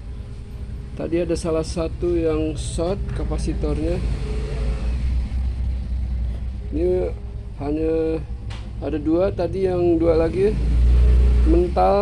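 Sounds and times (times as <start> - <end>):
low rumbling hum: 0.0 - 12.0.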